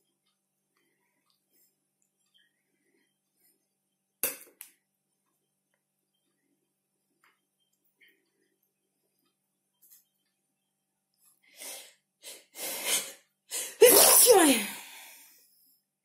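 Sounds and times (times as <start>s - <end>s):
person sneezing: 13.6s - 14.8s.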